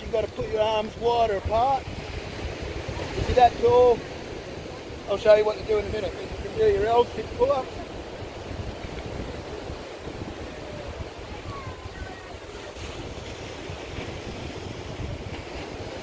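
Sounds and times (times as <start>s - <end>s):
ocean surf: 0.0s - 16.0s
wind noise on microphone: 0.0s - 16.0s.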